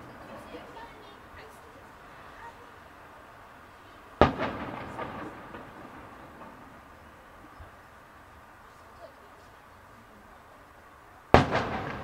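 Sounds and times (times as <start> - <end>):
rolling echo: 4.1 - 7.8, 11.3 - 12.0
firework shell booming: 4.2 - 7.5, 11.3 - 12.0.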